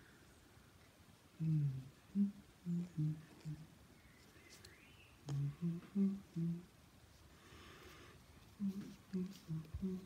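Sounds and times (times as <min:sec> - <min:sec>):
person humming: 0:01.4 - 0:03.8, 0:05.2 - 0:06.8, 0:08.5 - 0:10.0.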